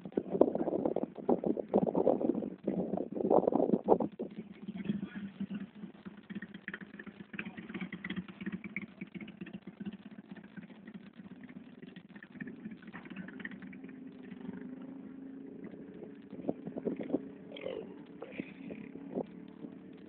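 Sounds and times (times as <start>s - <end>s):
motorcycle engine idling: 0.0s - 20.0s.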